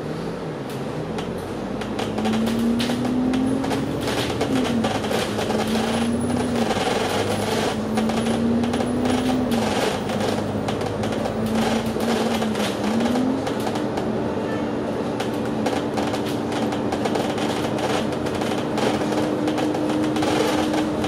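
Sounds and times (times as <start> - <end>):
bus drive-train drone: 0.0 - 21.0
bus body rattling: 0.6 - 21.0.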